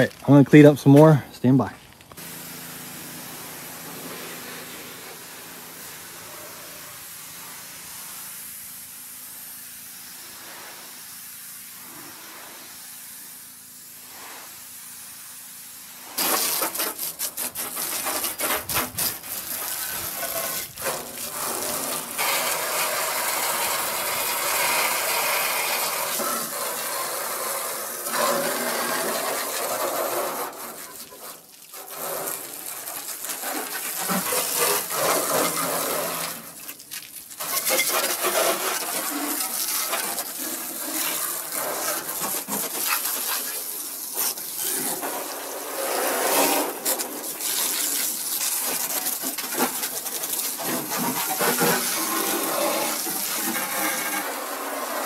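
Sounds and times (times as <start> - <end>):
pressure washer spraying metal: 2.1 - 55.0.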